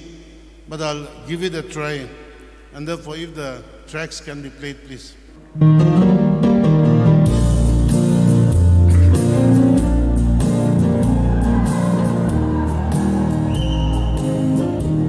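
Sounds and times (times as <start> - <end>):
gospel backing track over loudspeakers: 0.0 - 15.0.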